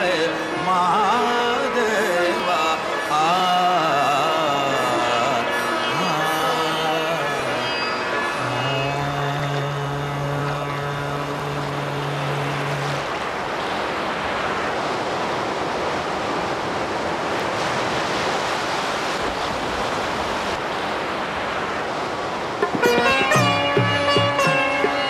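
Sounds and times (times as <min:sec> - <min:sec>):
ocean surf waves: 0:00.0 - 0:25.0
low musical drone: 0:22.8 - 0:25.0.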